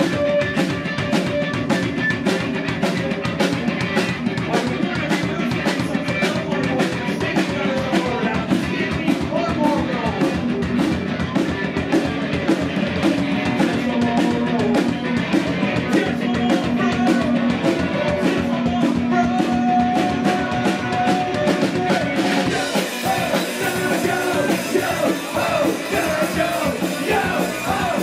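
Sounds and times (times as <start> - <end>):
live rock band playing: 0.0 - 28.0
steady drum beat: 0.0 - 28.0.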